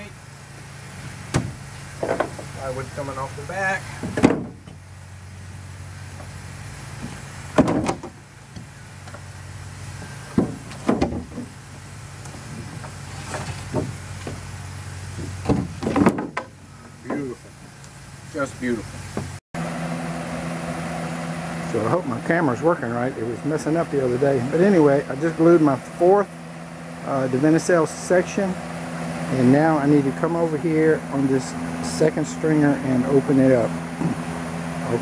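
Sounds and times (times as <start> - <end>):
steady low hum: 0.0 - 35.0
wooden boards knocking: 4.0 - 4.8, 7.6 - 8.7, 10.3 - 11.5, 12.8 - 14.4, 15.2 - 17.3.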